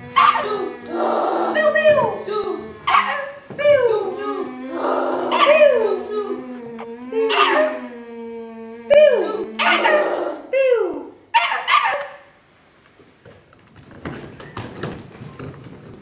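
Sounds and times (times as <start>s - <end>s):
low hummed voice: 0.0s - 3.1s, 3.7s - 10.7s
wailing falling voice glides: 0.0s - 11.1s.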